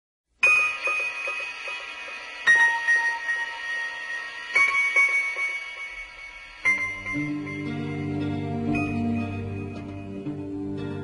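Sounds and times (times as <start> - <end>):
high bell-like chime: 0.4 - 10.2.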